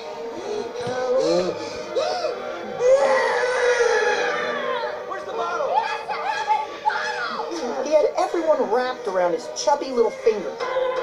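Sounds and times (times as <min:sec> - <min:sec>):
baby wailing: 0:00.4 - 0:07.8, 0:10.0 - 0:11.0.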